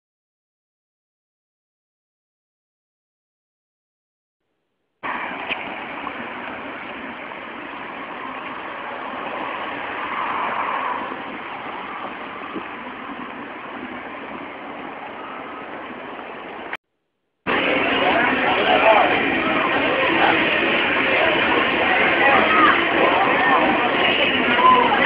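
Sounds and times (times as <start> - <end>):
road traffic noise: 5.0 - 16.8, 17.5 - 25.0.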